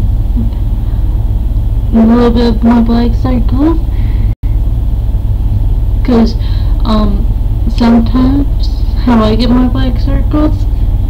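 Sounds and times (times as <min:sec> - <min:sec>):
loud steady low rumble: 0:00.0 - 0:11.0.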